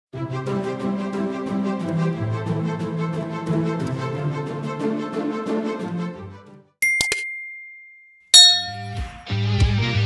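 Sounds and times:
music: 0:00.1 - 0:06.8, 0:08.9 - 0:10.0
bell-like ding: 0:06.8 - 0:09.3.

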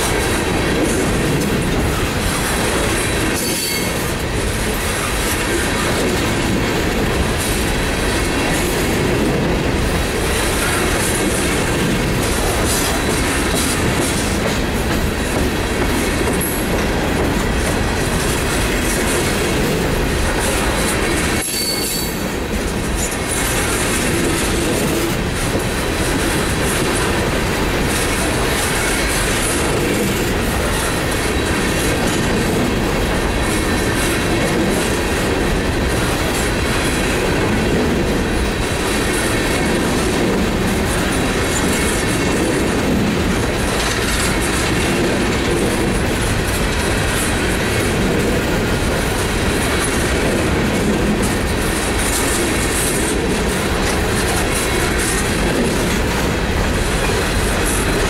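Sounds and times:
steel train wheels on rail: 0:00.0 - 0:58.0
faint wheel squeal: 0:21.5 - 0:22.2.

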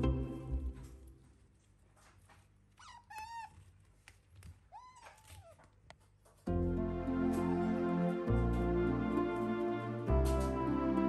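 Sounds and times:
high-pitched whining animal calls: 0:02.8 - 0:03.6.

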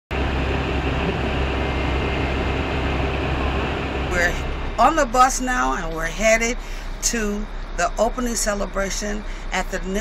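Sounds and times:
bus engine idling: 0:00.1 - 0:10.0.

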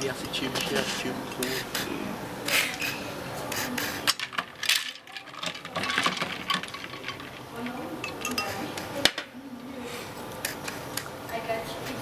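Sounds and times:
glassware clinking: 0:04.2 - 0:08.6.

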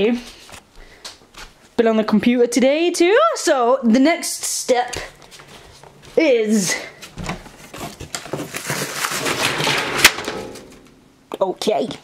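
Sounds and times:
rustling and clattering handling: 0:07.0 - 0:11.0.

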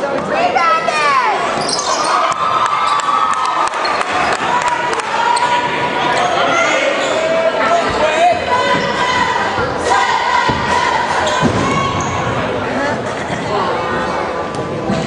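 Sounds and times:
crowd noise: 0:00.0 - 0:15.0.

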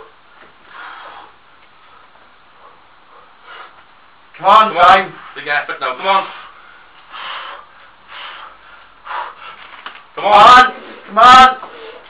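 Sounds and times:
man breathing forcefully: 0:00.6 - 0:04.1, 0:06.2 - 0:09.8.

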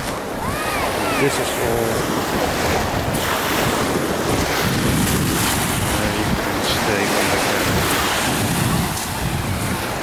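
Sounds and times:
small waves washing on shore: 0:00.0 - 0:10.0
wind buffeting microphone: 0:00.0 - 0:10.0.

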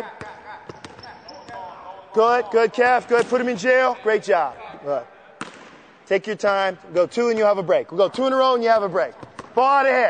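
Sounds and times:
shoe squeak: 0:00.7 - 0:01.6.

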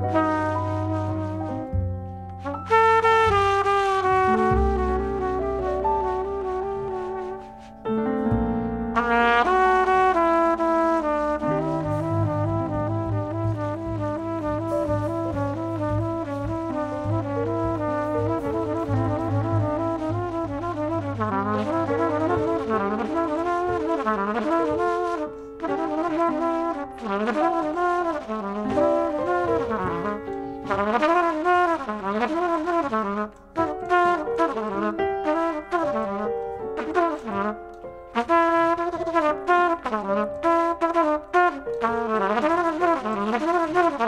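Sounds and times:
trumpet playing fast notes: 0:00.0 - 0:01.7, 0:02.4 - 0:07.7, 0:09.0 - 0:44.0
double bass: 0:00.0 - 0:41.1
piano: 0:00.0 - 0:44.0
drums: 0:11.6 - 0:24.9.

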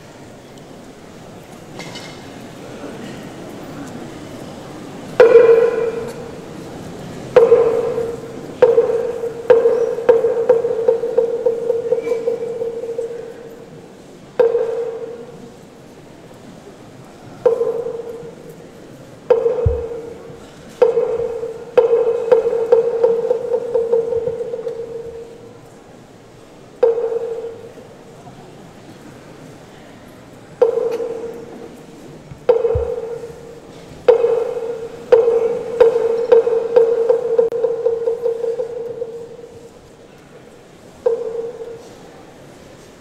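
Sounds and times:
struck ringing percussion: 0:05.2 - 0:13.7, 0:14.4 - 0:15.6, 0:17.4 - 0:18.5, 0:19.3 - 0:25.6, 0:26.8 - 0:27.9, 0:30.6 - 0:31.8, 0:32.4 - 0:39.8, 0:41.0 - 0:42.0.

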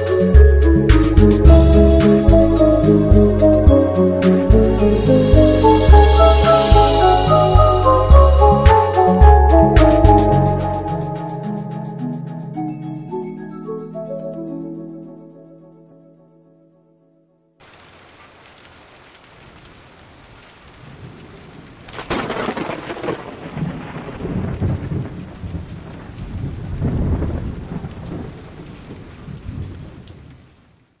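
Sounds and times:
steady rain: 0:00.0 - 0:11.1, 0:17.6 - 0:31.0
rumbling thunder: 0:20.8 - 0:30.4
thunderclap: 0:20.8 - 0:30.5.

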